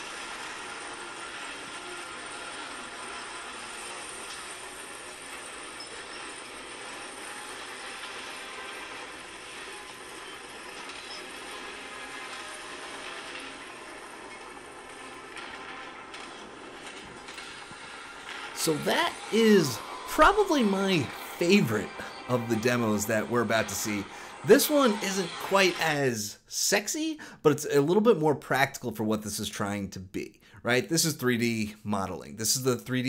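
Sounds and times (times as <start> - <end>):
room ambience: 0.0 - 28.7.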